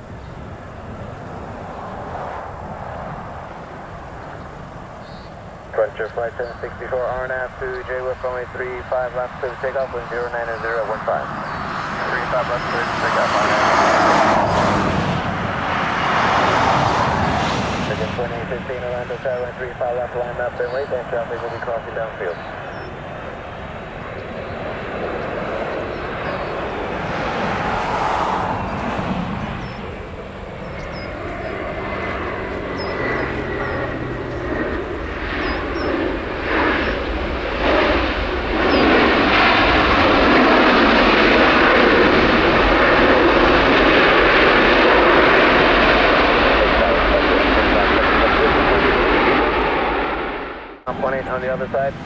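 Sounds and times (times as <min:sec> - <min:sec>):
jet engine noise: 0:00.0 - 0:52.0
reverse thrust rush: 0:11.2 - 0:18.3.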